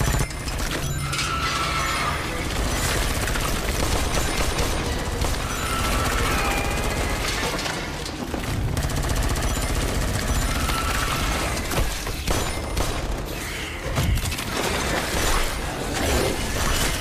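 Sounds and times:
rapid gunfire: 0:00.0 - 0:01.0, 0:02.4 - 0:07.5, 0:08.2 - 0:17.0
action film music score: 0:00.0 - 0:17.0.

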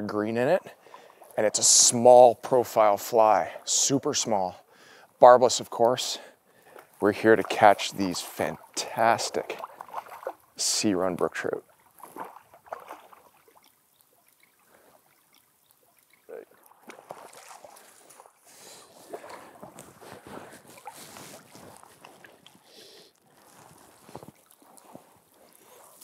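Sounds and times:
water splashing and sloshing: 0:00.0 - 0:26.0.

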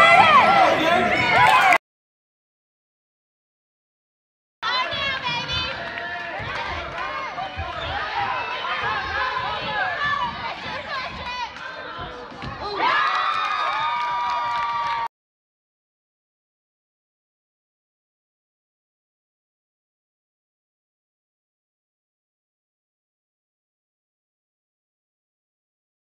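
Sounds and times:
spectators shouting: 0:00.0 - 0:01.8.

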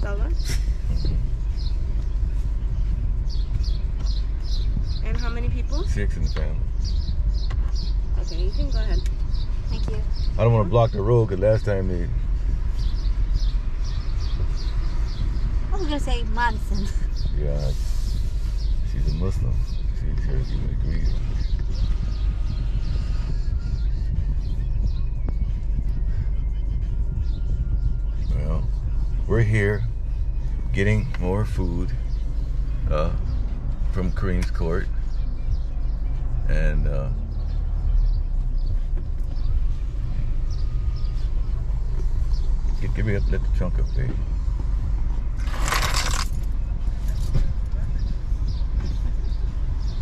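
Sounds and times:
car engine idling: 0:00.0 - 0:50.0
brief rustle: 0:45.4 - 0:46.5.

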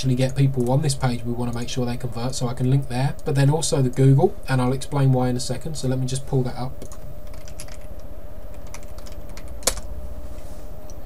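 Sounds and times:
faint steady hum: 0:00.0 - 0:11.0
keyboard typing: 0:06.8 - 0:09.9.

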